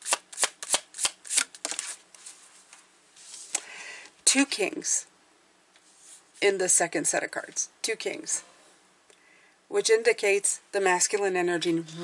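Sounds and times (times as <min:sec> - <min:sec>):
cards being shuffled: 0:00.0 - 0:03.7.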